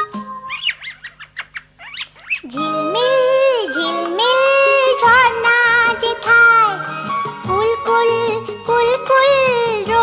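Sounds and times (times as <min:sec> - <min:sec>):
bird chirps: 0:00.0 - 0:02.5.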